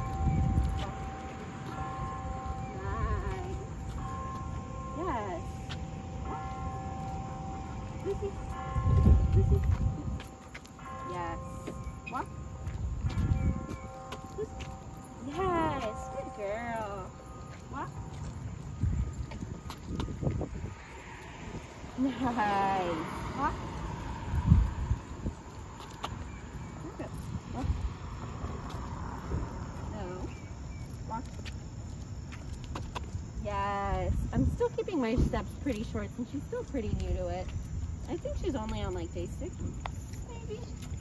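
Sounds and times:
wind on microphone: 0.0s - 4.1s, 6.9s - 10.6s, 11.2s - 16.4s, 18.0s - 30.4s
low street rumble: 0.0s - 41.0s
passing traffic: 0.0s - 41.0s.

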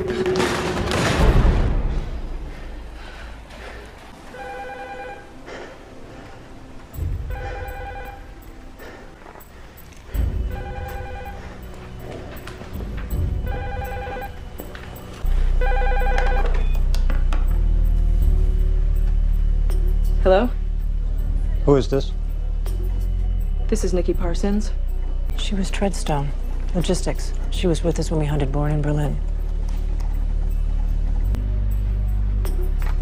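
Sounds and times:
film score music with deep hits: 0.0s - 4.3s, 5.3s - 33.0s
telephone ringing: 4.4s - 5.4s, 7.3s - 8.4s, 10.5s - 11.7s, 13.4s - 14.6s, 15.6s - 16.8s.

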